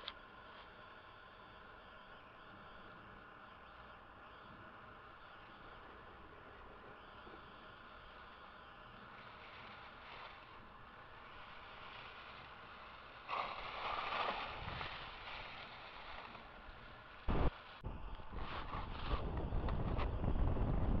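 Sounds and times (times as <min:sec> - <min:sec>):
skis scraping over snow: 0:09.0 - 0:20.1.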